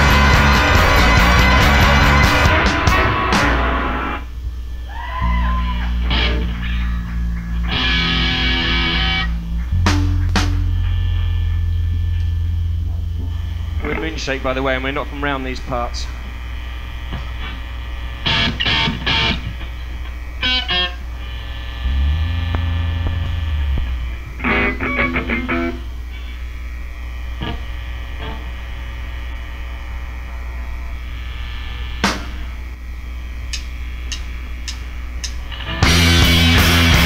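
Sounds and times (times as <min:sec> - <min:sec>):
full band playing loud: 0:00.0 - 0:04.1, 0:35.8 - 0:37.0
amplifier hum: 0:00.0 - 0:37.0
distorted electric guitar bursts: 0:00.0 - 0:37.0
held low bass note: 0:04.2 - 0:37.0.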